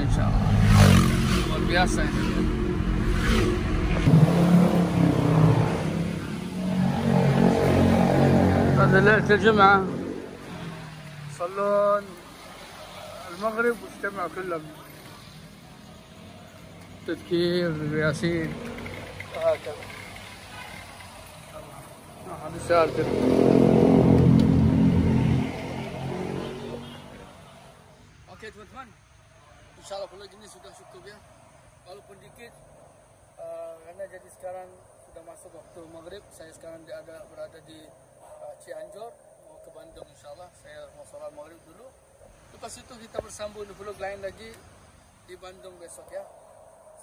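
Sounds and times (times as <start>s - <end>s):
car engine hum: 0.0s - 11.5s, 21.7s - 27.4s.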